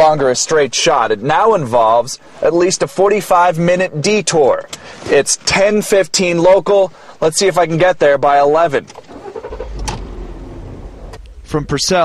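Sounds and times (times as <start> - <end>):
car engine and road rumble: 8.7 - 12.0.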